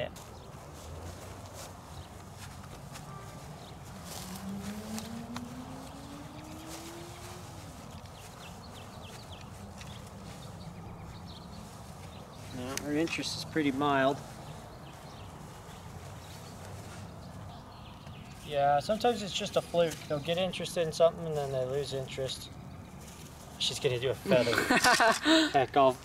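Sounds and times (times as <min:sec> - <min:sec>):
soft footsteps on grass: 0:00.0 - 0:24.5
faint hum rising in pitch: 0:03.1 - 0:09.7.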